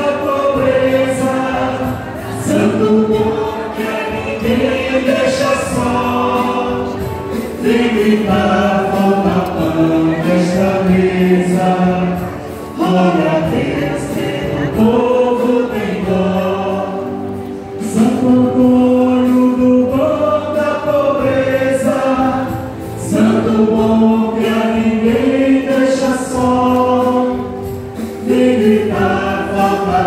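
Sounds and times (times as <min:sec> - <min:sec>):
congregation singing a hymn: 0:00.0 - 0:30.0.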